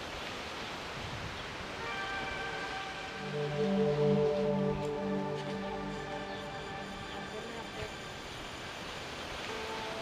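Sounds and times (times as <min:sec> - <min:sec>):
steady hiss: 0:00.0 - 0:10.0
soft background music: 0:01.6 - 0:10.0.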